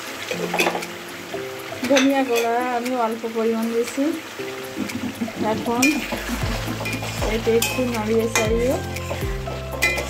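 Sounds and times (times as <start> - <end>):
sauce sizzling: 0.0 - 10.0
metal spatula scraping pan: 5.4 - 9.2.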